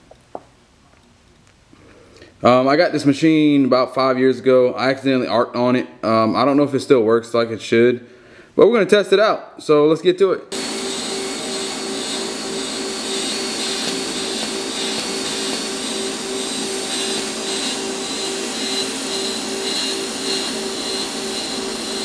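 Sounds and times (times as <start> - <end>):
welding arc hissing and humming: 10.5 - 22.0.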